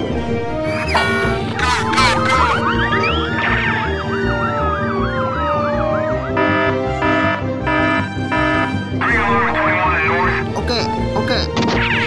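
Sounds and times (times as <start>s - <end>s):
fast warbling siren: 0.8s - 9.3s.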